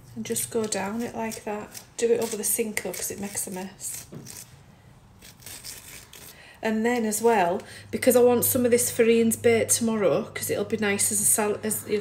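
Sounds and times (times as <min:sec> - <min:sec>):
spoon scraping cucumber seeds: 0:00.2 - 0:04.5, 0:05.2 - 0:07.3.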